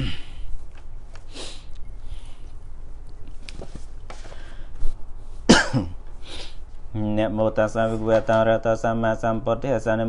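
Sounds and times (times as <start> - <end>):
man coughing harshly: 0.0 - 0.3, 5.5 - 6.0.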